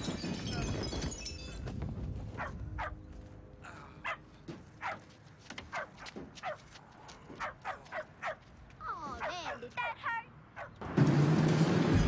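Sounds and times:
dog barking: 2.4s - 3.0s, 4.8s - 5.0s, 5.7s - 6.6s, 7.4s - 8.4s, 10.6s - 10.8s.

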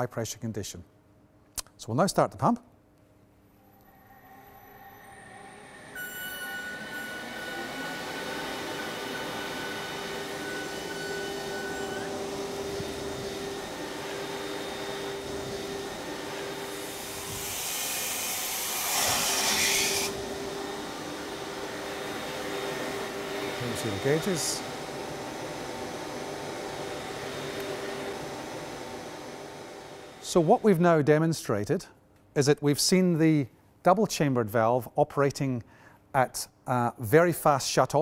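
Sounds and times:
water pump humming and whining: 3.8s - 31.2s.

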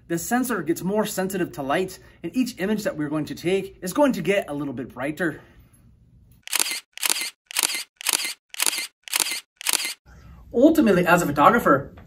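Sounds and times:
camera shutter double clicks: 6.5s - 10.0s.

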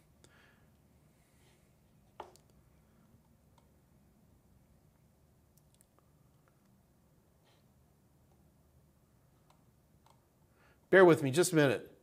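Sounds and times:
man speaking: 10.9s - 12.0s.

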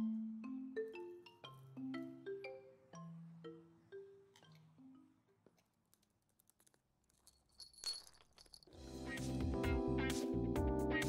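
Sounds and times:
jingle bell toy jangling: 7.2s - 8.8s.

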